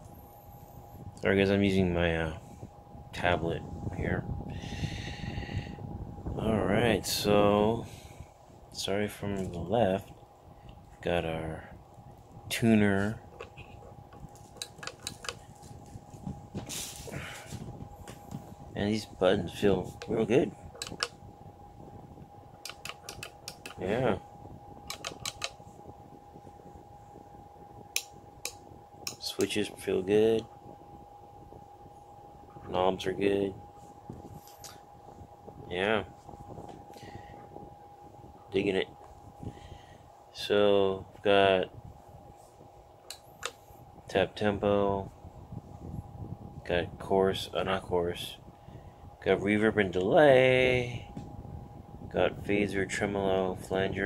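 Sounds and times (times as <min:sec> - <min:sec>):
faint steady hum: 0:00.0 - 0:54.0
short rustle: 0:15.4 - 0:18.3
pedal footswitch clicks: 0:20.8 - 0:21.1, 0:22.6 - 0:23.8, 0:24.9 - 0:25.6.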